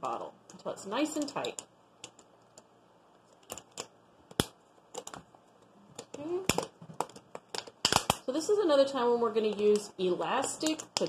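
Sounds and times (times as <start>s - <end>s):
rubber bands clicking on plastic: 0.5s - 2.7s, 3.3s - 8.2s, 9.4s - 11.0s.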